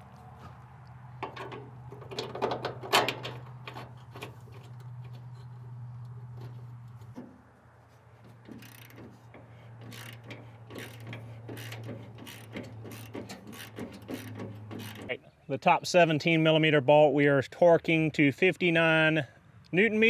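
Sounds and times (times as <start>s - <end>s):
sharp metal clicks: 8.4s - 15.2s
ratchet wrench clicking: 8.5s - 15.1s.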